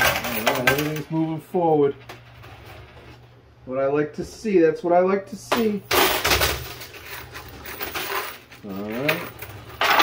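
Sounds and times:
coins clattering in arcade machine: 0.0 - 1.2, 5.9 - 10.0.

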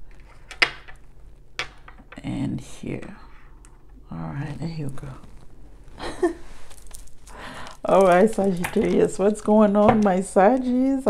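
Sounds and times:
stones clicking on wooden table: 0.1 - 1.0, 1.6 - 2.2, 6.7 - 7.3, 7.9 - 9.1.

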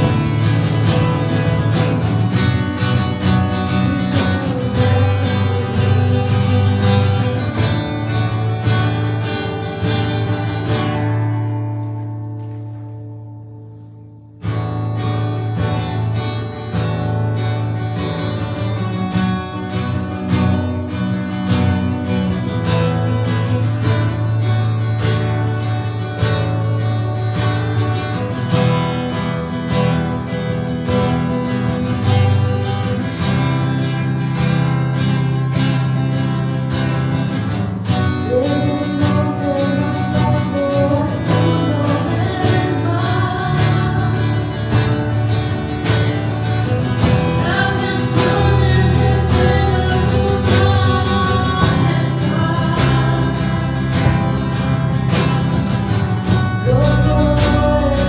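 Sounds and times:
worship band playing: 0.0 - 12.9, 27.6 - 58.0
woman singing: 3.3 - 7.6, 38.0 - 45.5, 46.9 - 55.6, 56.3 - 58.0.

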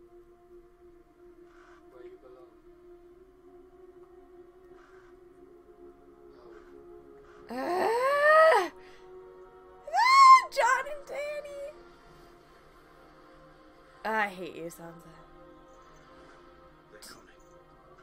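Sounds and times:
low music drone: 0.0 - 18.0.

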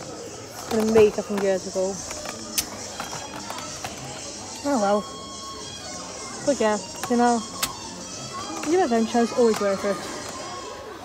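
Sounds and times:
background music: 0.0 - 11.0
faint voices: 0.0 - 11.0.

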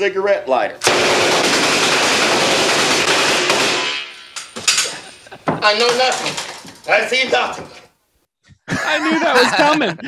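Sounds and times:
rapid machine-gun fire: 0.8 - 4.2.

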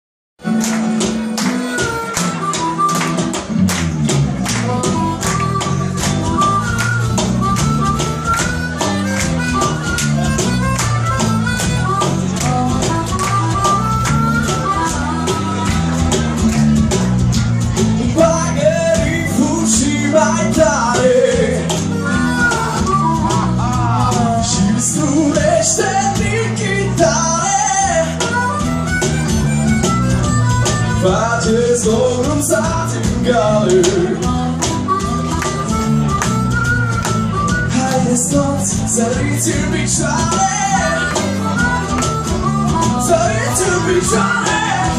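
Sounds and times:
harmonica held notes: 0.4 - 3.6, 4.5 - 16.4, 18.6 - 32.1, 34.2 - 44.9
acoustic guitars and bass: 0.4 - 44.9
cajon beat: 0.4 - 44.9.

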